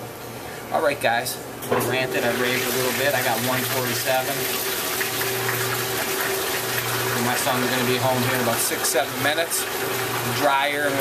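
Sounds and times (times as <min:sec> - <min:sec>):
running water rushing: 0:02.0 - 0:11.0.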